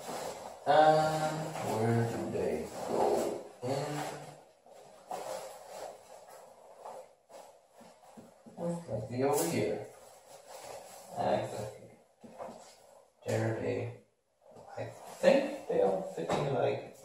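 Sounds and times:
murmured vocal sounds: 0.7s - 4.3s.

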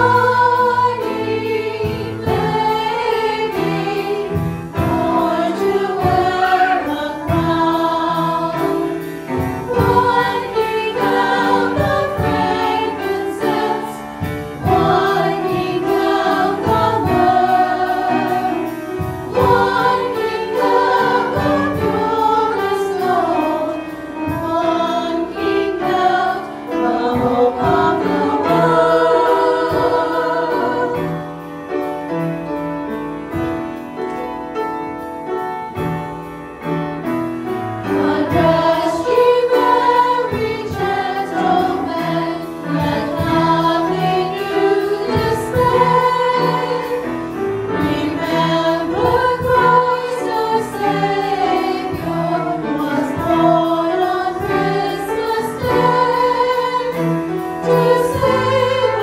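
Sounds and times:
women singing a hymn: 0.0s - 31.4s, 37.8s - 59.0s
piano accompaniment: 0.0s - 59.0s.

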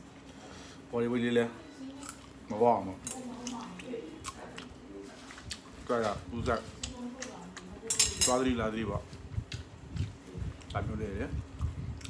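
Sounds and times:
metal chopsticks clinking on bowl: 7.9s - 8.5s.

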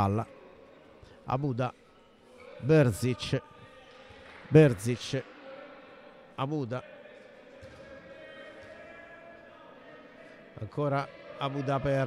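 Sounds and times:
indoor hall background: 0.0s - 12.0s.

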